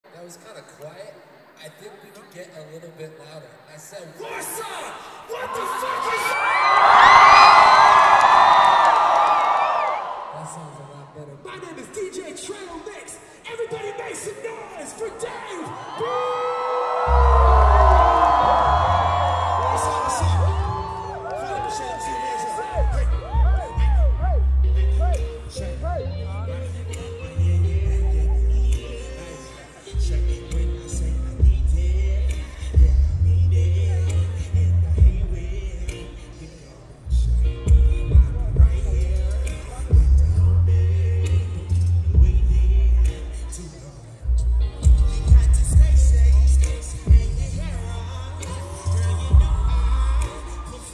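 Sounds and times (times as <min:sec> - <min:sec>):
crowd cheering and whooping: 0:04.3 - 0:10.7, 0:14.7 - 0:29.9, 0:44.3 - 0:50.9
hip-hop beat with heavy bass: 0:17.0 - 0:50.9.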